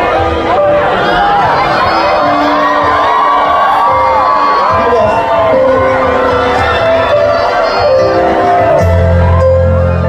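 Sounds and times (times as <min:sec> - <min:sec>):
crowd cheering and singing: 0:00.0 - 0:10.0
pop-rock band playing live: 0:00.0 - 0:10.0.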